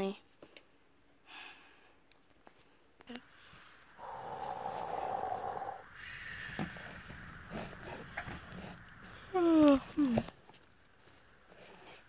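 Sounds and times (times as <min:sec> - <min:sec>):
person pretend snoring: 0:04.0 - 0:07.0.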